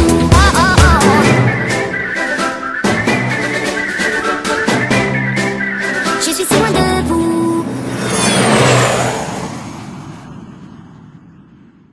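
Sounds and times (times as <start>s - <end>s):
downward sweeping whoosh: 7.4s - 11.9s.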